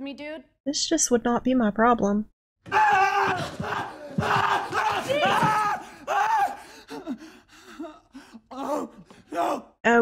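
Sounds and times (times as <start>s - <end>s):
man screaming: 2.7s - 7.1s, 8.5s - 9.7s
broken cries and breaths: 2.9s - 9.6s.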